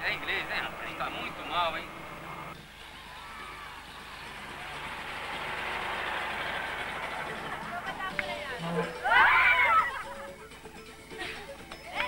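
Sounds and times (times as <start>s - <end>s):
car engine and tyres approaching: 0.0s - 11.1s.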